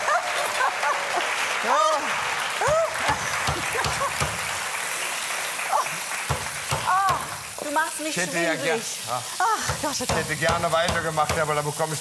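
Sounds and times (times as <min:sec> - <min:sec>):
people laughing: 0:00.0 - 0:02.0, 0:02.6 - 0:04.5, 0:08.1 - 0:10.2
audience applauding: 0:00.0 - 0:08.2.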